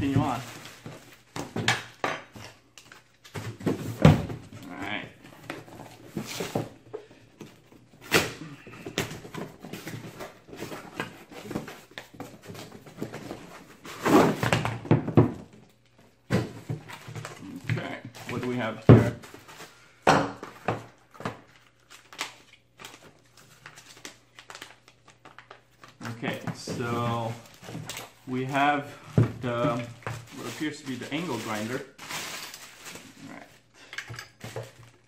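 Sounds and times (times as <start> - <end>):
packaging rustling and tearing: 21.0 - 28.8, 29.7 - 33.7.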